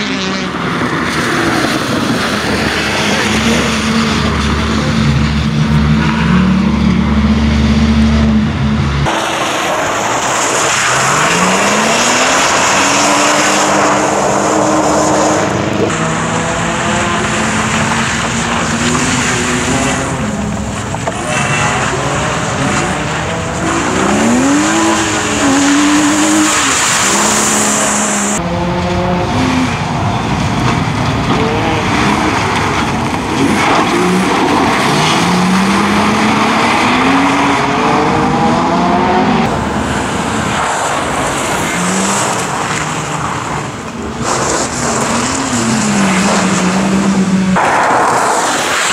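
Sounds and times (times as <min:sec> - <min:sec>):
car engine revving: 0:00.0 - 0:48.9
tyre noise on wet tarmac: 0:29.6 - 0:37.6, 0:39.4 - 0:48.9.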